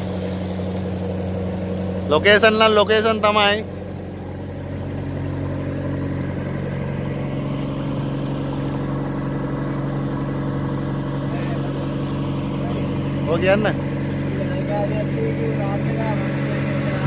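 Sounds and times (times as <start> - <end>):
boat engine droning: 0.0 - 17.0
water hissing along hull: 0.0 - 17.0.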